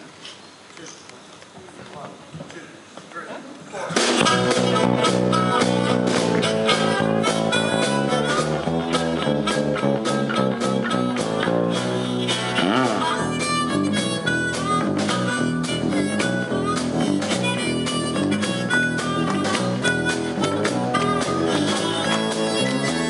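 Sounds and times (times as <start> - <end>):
blues band playing: 4.0 - 23.0
harmonica: 4.2 - 23.0.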